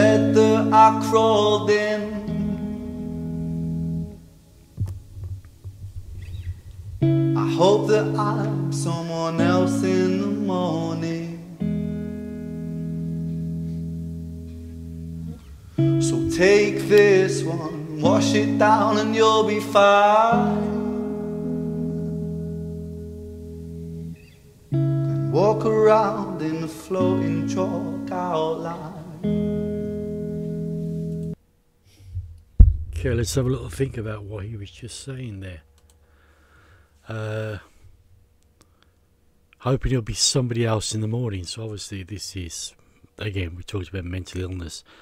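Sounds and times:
electric guitar ringing chord: 0:00.0 - 0:04.6, 0:07.0 - 0:31.4
low plucked thumps: 0:04.8 - 0:07.2, 0:32.1 - 0:34.8.

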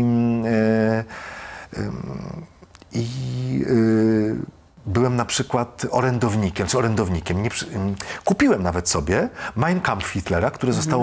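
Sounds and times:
man's drawn-out hesitation sounds: 0:10.4 - 0:11.0.

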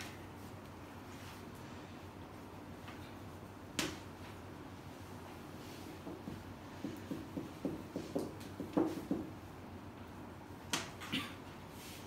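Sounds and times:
chalk tapping blackboard: 0:05.9 - 0:09.4.

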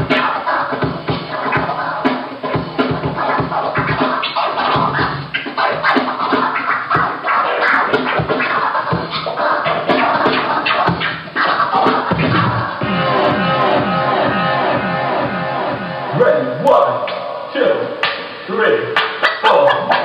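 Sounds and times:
music beat: 0:00.0 - 0:20.0
vinyl record scratching: 0:00.0 - 0:20.0.

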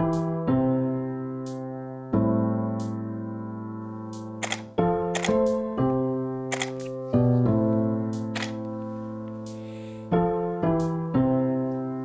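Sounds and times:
soft electric piano music: 0:00.0 - 0:12.0
camera shutter clicks: 0:04.4 - 0:05.5, 0:06.5 - 0:07.0, 0:08.4 - 0:08.7.

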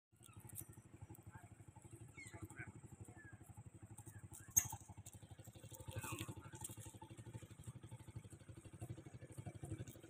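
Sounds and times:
small engine puttering: 0:00.2 - 0:10.0.

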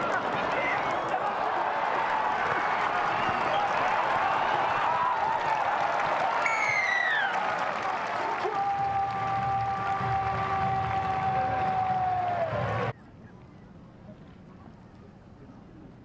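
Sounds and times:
stadium crowd clapping: 0:00.0 - 0:12.9.

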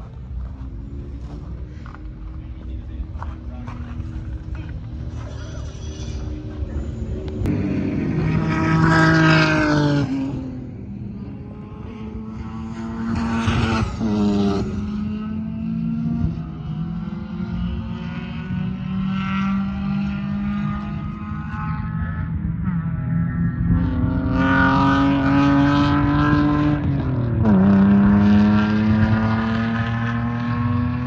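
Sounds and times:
distant racing engines accelerating: 0:00.0 - 0:31.0
racing car passing: 0:00.0 - 0:31.0.

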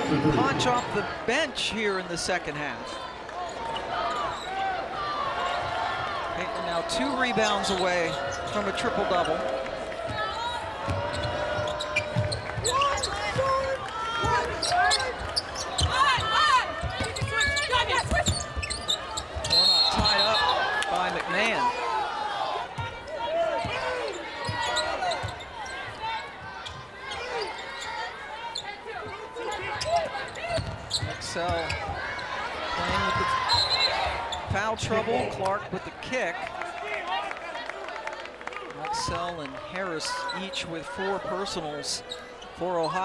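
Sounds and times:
crowd voices in arena: 0:00.0 - 0:43.0.

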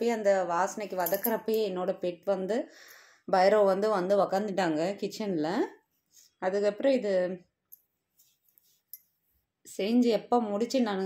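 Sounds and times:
woman speaking: 0:00.0 - 0:02.7, 0:03.3 - 0:05.8, 0:06.4 - 0:07.5, 0:09.7 - 0:11.0.

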